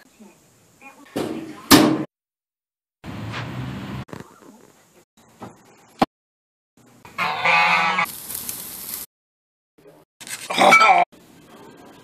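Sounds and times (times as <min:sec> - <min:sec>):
loud honk-like call: 0:07.2 - 0:08.1
burger patties sizzling on grill: 0:08.1 - 0:09.1.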